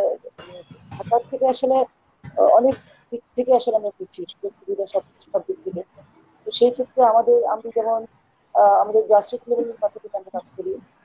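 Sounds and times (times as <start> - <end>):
woman talking over video call: 0.0 - 10.9.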